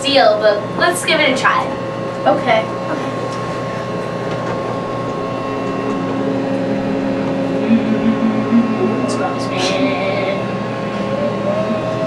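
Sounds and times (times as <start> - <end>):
background hum and hiss: 0.0 - 12.0
low held tone: 0.0 - 12.0
soft wavering pulses: 0.0 - 12.0.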